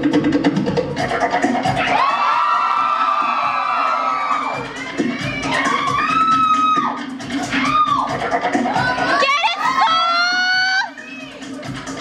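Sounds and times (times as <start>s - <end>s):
fast drum music: 0.0s - 12.0s
high-pitched whooping cheers: 1.7s - 8.2s, 8.8s - 11.4s.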